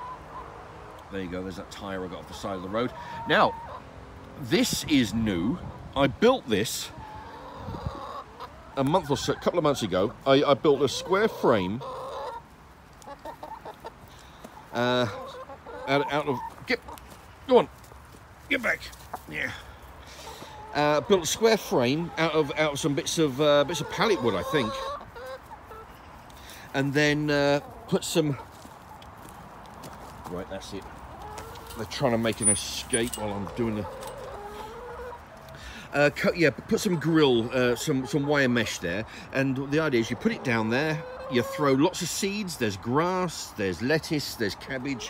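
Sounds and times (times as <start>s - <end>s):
drawn-out hen call: 0.0s - 1.1s, 1.8s - 17.7s, 18.5s - 29.4s, 30.6s - 38.8s, 39.4s - 42.7s
hens clucking: 0.0s - 45.0s.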